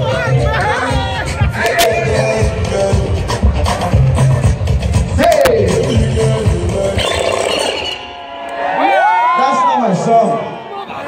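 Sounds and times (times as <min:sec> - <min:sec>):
loud live concert music: 0:00.0 - 0:11.0.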